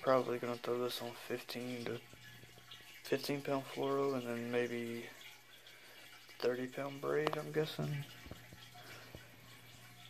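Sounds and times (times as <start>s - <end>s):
soft plastic ticks: 6.4s - 9.3s.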